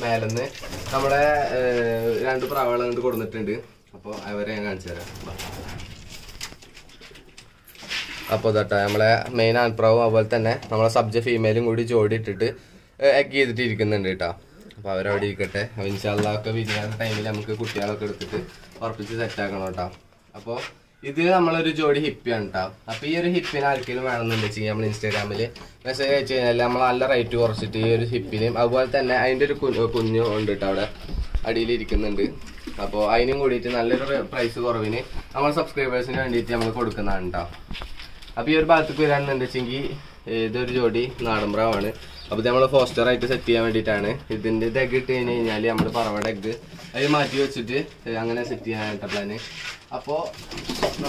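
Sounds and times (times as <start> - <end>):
person's voice: 0.0 - 5.1, 8.3 - 37.6, 38.4 - 51.0.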